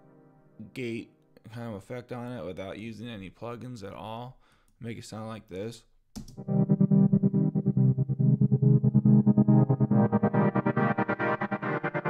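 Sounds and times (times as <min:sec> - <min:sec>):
gated synth pad pulses: 0:06.4 - 0:12.0.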